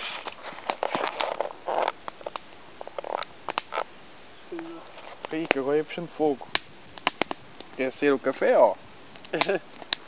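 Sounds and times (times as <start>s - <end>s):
campfire crackling: 0.0s - 10.0s
fire hissing rushes: 0.0s - 10.0s.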